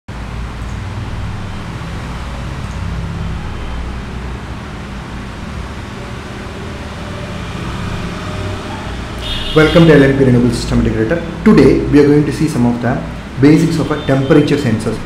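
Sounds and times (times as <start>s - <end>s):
steady low hum with hiss: 0.1s - 15.0s.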